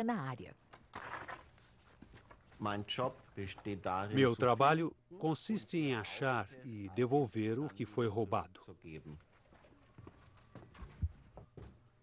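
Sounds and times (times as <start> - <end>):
faint footsteps: 0.8 - 4.6, 9.1 - 12.0.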